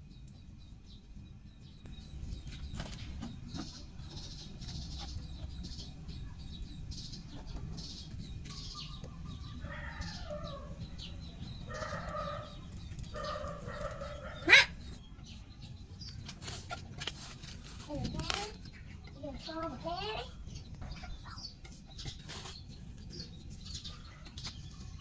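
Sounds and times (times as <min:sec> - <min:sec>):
chickens clucking: 0:02.2 - 0:25.0.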